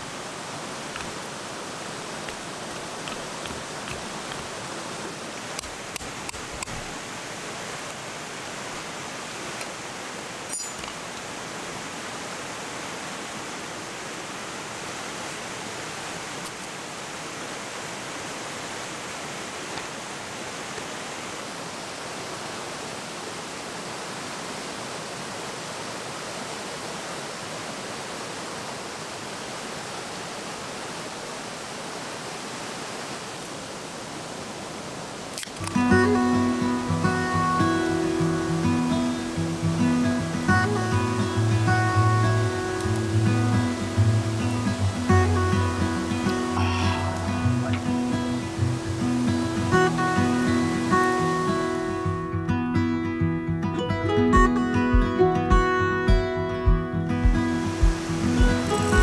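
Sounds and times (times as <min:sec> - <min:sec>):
river water flowing: 0:00.0 - 0:59.0.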